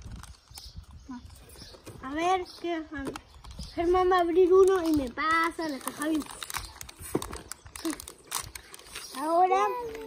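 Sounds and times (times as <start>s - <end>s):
plastic foil packet crinkling and tearing: 0.0s - 2.0s, 3.0s - 10.0s.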